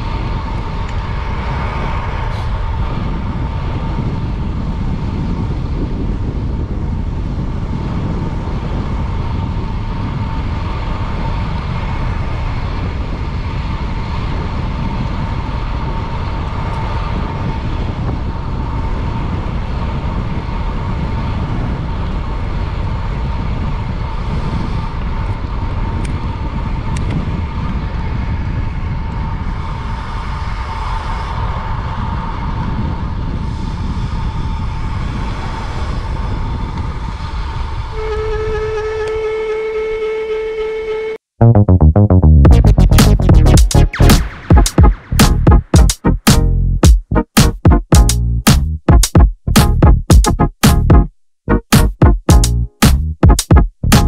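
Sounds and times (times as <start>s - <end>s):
wind rushing over microphone: 0.0s - 40.2s
steady pitched tone: 41.4s - 54.0s.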